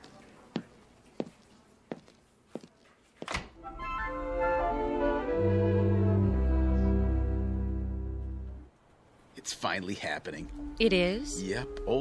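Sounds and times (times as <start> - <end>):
orchestral music: 3.6 - 8.7.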